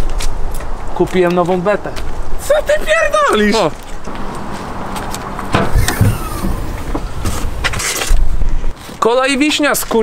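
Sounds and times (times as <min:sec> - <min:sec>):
car boot latch clicks: 0:05.1 - 0:07.9
short falling whine of lid: 0:05.4 - 0:07.8.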